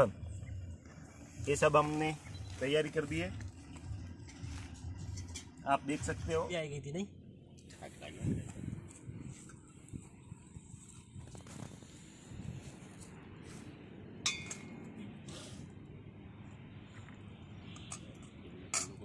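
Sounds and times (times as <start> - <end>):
spoon clinking on steel bowls: 14.3 - 14.7.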